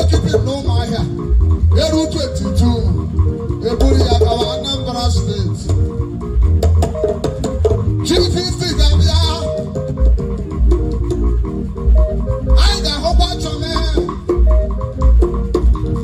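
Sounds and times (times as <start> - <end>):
bass guitar line: 0.0 - 16.0
steady percussion: 0.0 - 16.0.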